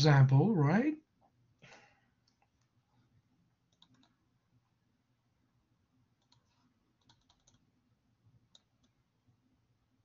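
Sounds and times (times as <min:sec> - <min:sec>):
faint clicks: 0:03.7 - 0:04.2, 0:06.2 - 0:07.7.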